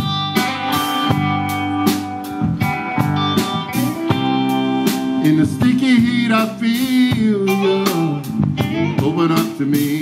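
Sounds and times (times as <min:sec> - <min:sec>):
bass guitar: 0:00.0 - 0:10.0
drum beat with cymbal hits: 0:00.0 - 0:10.0
electric guitar notes: 0:00.0 - 0:10.0
person singing: 0:05.0 - 0:10.0.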